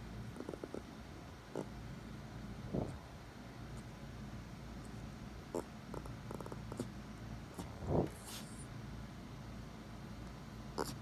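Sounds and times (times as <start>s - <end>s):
small dog snorting grunts: 0.3s - 1.8s, 5.5s - 8.7s, 10.8s - 11.0s.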